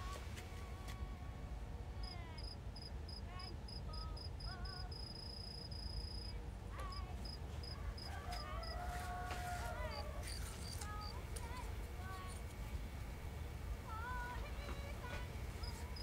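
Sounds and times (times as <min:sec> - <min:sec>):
low background hum: 0:00.0 - 0:16.0
cricket chirping: 0:02.0 - 0:08.8, 0:09.9 - 0:11.2, 0:15.6 - 0:16.0.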